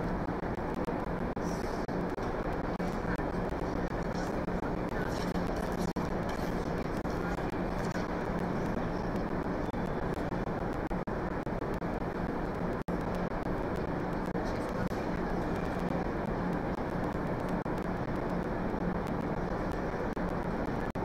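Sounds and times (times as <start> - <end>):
ice arena rumble: 0.0 - 21.0.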